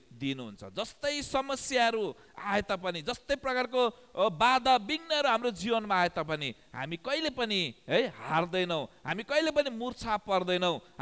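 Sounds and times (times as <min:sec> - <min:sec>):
man preaching: 0:00.0 - 0:11.0.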